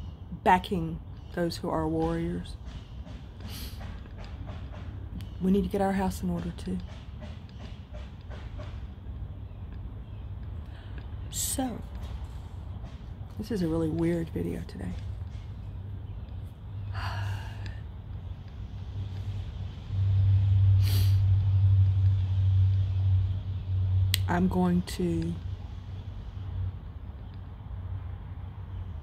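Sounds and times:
low engine-like hum: 0.0 - 29.0
low background rumble: 4.0 - 29.0
short hiss: 20.8 - 21.2.

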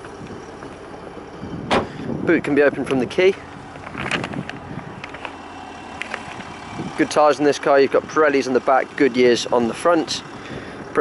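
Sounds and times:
steady outdoor hum: 0.0 - 11.0.

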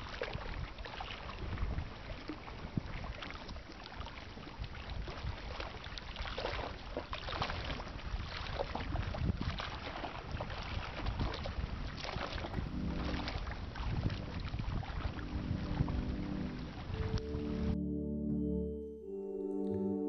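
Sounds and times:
water sloshing: 0.0 - 17.7
wind noise on microphone: 0.0 - 17.8
soft sustained music tones: 12.6 - 20.0.

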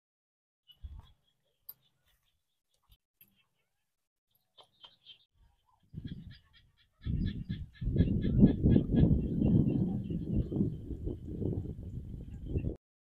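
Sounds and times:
wind buffeting microphone: 5.8 - 12.8.

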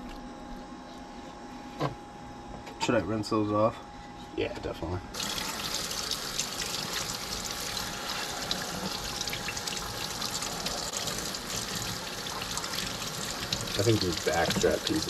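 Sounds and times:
faucet running into a steel sink: 5.2 - 15.0
fish rinsed by hand: 5.2 - 15.0.

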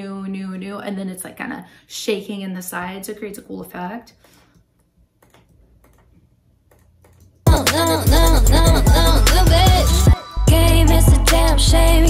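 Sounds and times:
computer mouse clicks: 4.5 - 7.4.

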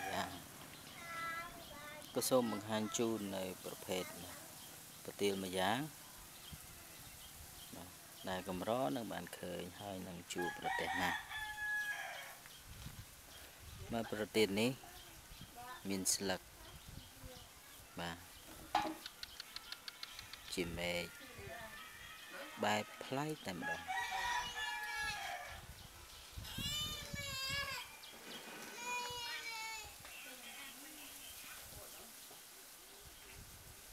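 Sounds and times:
rooster crowing: 10.4 - 12.4, 20.1 - 25.6
farmyard animal calling: 19.0 - 25.6.

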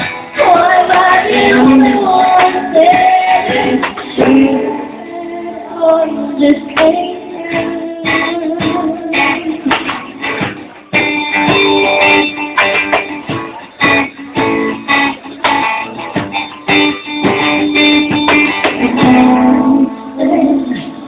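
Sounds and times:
guitar strumming chords: 0.0 - 21.0.

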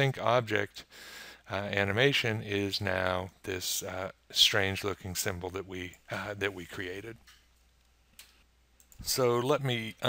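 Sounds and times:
computer mouse clicks: 7.8 - 9.1.

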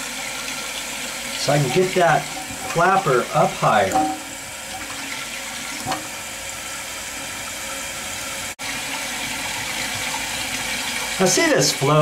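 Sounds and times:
water rushing into toilet tank: 0.0 - 12.0.

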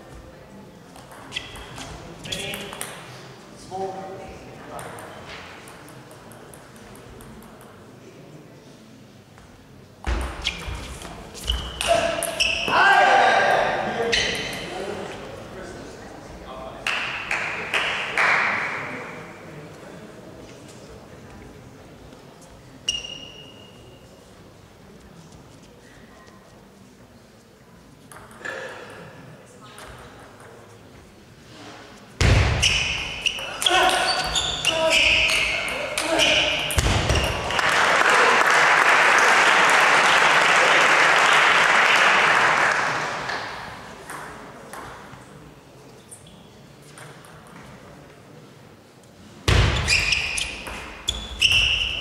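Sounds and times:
murmur of voices: 0.0 - 51.1
shoes squeaking on floor: 1.1 - 2.8, 10.2 - 12.9, 14.0 - 14.7, 22.8 - 24.1, 32.5 - 37.6, 49.7 - 52.0.

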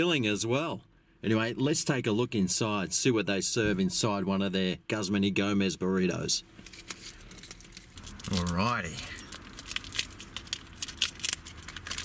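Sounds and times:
aluminium foil crinkling: 6.6 - 12.0
paper sticker peeling: 6.6 - 12.0.

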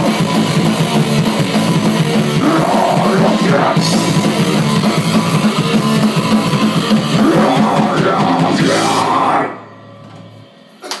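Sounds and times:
punk rock band playing: 0.0 - 11.0
low hum: 7.2 - 10.8.

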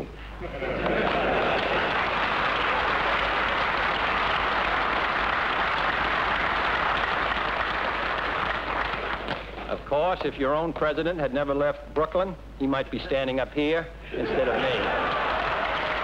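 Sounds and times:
audience applauding: 0.7 - 9.7, 14.4 - 16.0.

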